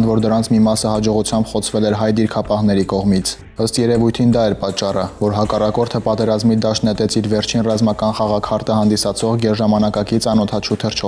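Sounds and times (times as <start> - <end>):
man narrating: 0.0 - 11.0.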